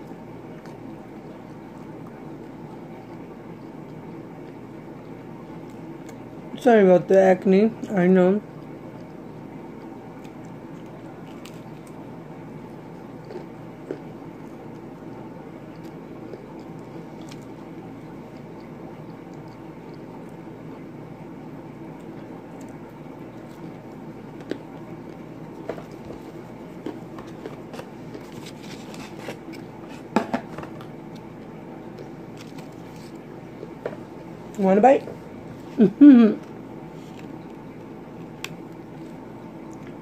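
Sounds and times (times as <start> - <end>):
chewing with mouth smacks: 0.0 - 6.3, 8.5 - 20.5, 21.3 - 30.1, 30.8 - 34.6, 36.4 - 40.0
steady background hum: 0.0 - 40.0.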